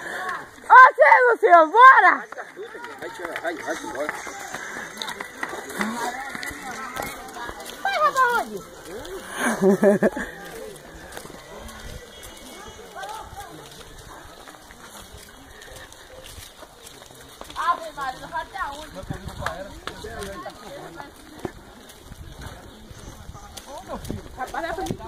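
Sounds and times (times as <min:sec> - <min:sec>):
outdoor noise: 0:00.0 - 0:25.0
voices calling out: 0:00.0 - 0:25.0.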